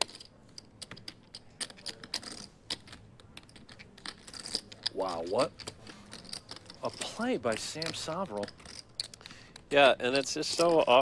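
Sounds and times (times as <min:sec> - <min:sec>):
poker chips clicking: 0:00.0 - 0:11.0.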